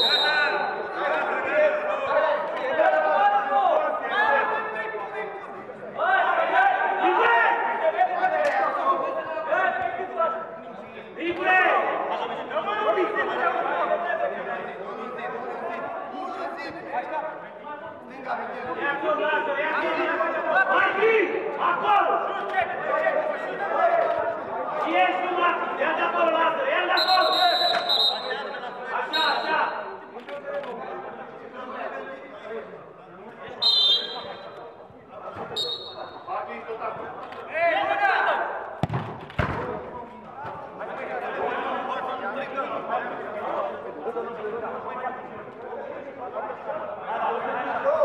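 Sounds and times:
whistle blasts: 0:00.0 - 0:00.8, 0:27.0 - 0:29.6, 0:33.6 - 0:34.6, 0:35.5 - 0:36.3
players calling and chattering: 0:00.0 - 0:48.0.

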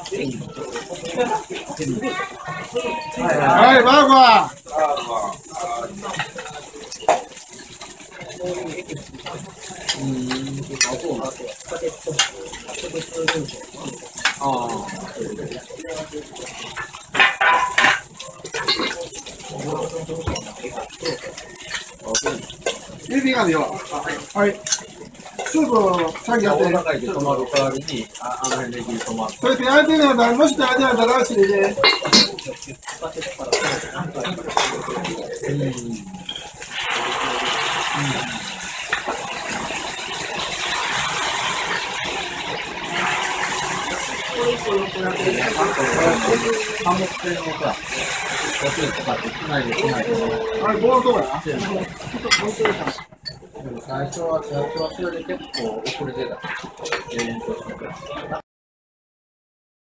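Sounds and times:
sauce sizzling on hot iron plates: 0:00.0 - 0:58.0
utensils clinking on steel bowls: 0:00.0 - 0:58.2.

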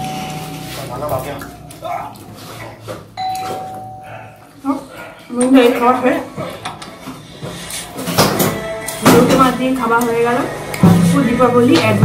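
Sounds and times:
bell-like ding: 0:03.2 - 0:04.2.

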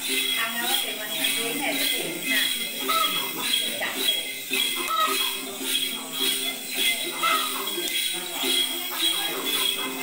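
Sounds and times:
jingle bells shaken: 0:00.0 - 0:10.0.

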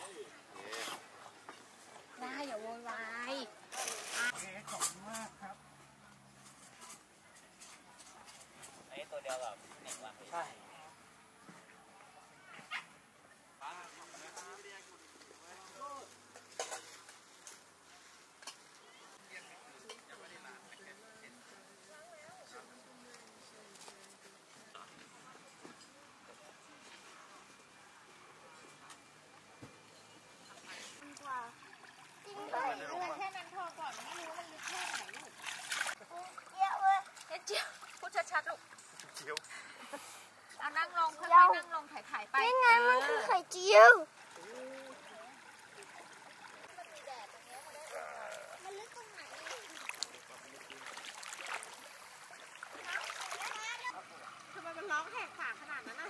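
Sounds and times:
water splash: 0:33.2 - 0:38.1, 0:48.6 - 0:54.6
child's voice: 0:36.1 - 0:37.6, 0:42.4 - 0:44.1, 0:48.6 - 0:49.2.

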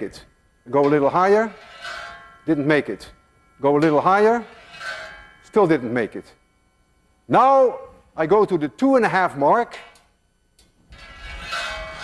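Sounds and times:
metal rail ringing: 0:00.7 - 0:06.2
ball rolling on metal track: 0:00.8 - 0:02.5, 0:03.7 - 0:05.5, 0:10.9 - 0:12.0.

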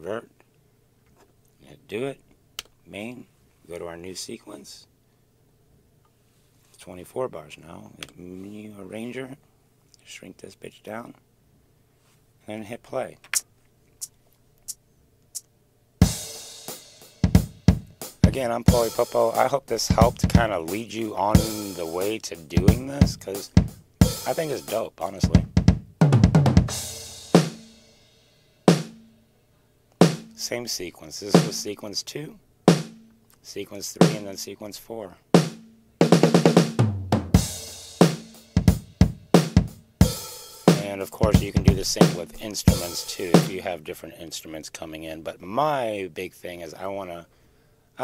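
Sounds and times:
kick drum and cymbal hit: 0:16.0 - 0:19.2, 0:22.6 - 0:24.7, 0:25.3 - 0:29.1, 0:30.0 - 0:30.4, 0:32.7 - 0:33.1, 0:35.4 - 0:43.5.

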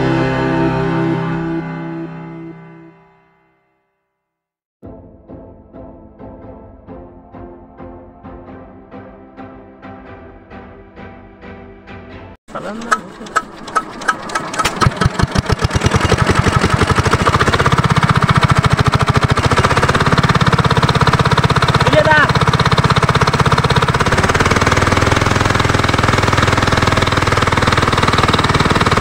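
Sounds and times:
diesel engine running: 0:12.5 - 0:29.0.

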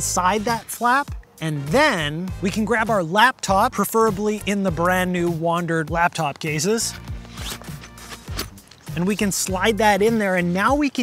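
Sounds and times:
background music: 0:00.0 - 0:11.0
fabric scraping and rustling: 0:06.6 - 0:09.4.

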